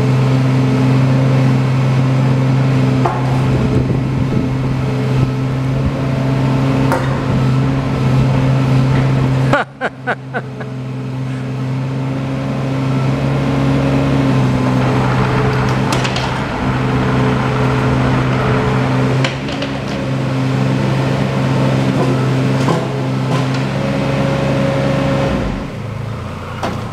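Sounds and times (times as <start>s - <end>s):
excavator diesel engine running: 0.0s - 26.9s
sharp knocks: 3.0s - 7.8s, 14.8s - 21.3s.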